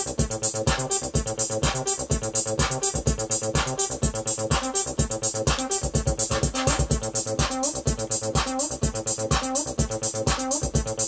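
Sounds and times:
drum beat: 0.0s - 11.0s
synth bassline: 0.0s - 11.0s.

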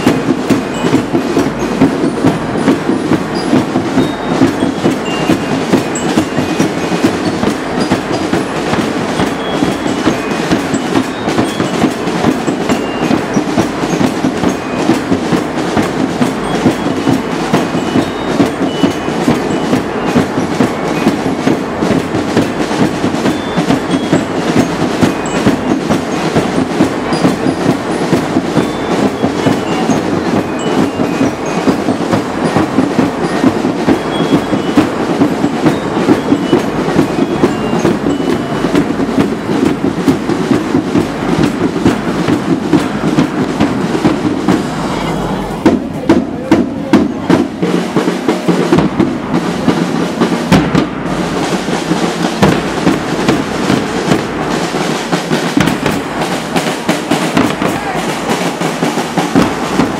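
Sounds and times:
drums rattling fast: 0.0s - 59.9s.

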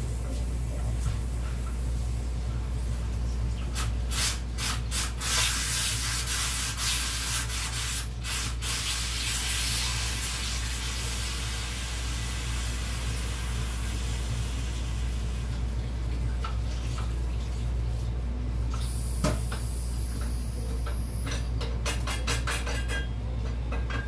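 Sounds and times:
tap water running into sink: 8.3s - 17.8s.

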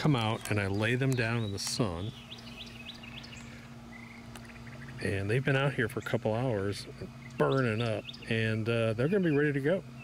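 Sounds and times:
outdoor background noise: 0.0s - 10.0s
steady low hum: 0.0s - 10.0s
small bird chirping: 0.3s - 6.2s, 6.8s - 10.0s.

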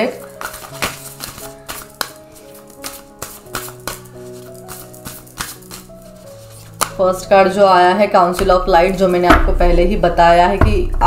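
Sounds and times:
soft background music: 0.0s - 11.0s
cards being shuffled: 0.2s - 7.0s.

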